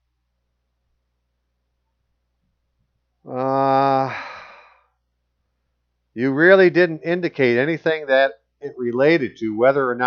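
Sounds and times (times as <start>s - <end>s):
man sighing: 3.2s - 4.9s.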